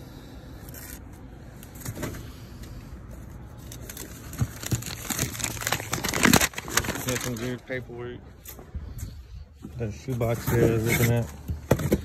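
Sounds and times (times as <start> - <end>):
paper rustling and crinkling: 3.6 - 7.6.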